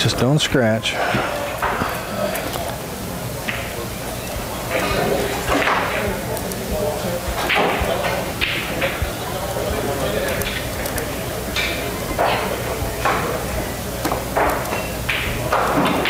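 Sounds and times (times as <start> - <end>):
murmured voices: 0.0 - 16.0
room noise hum: 0.0 - 16.0.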